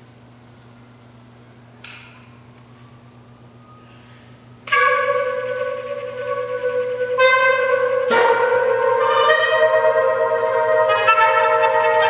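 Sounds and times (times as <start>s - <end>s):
woodwind ensemble chord: 4.7s - 12.0s.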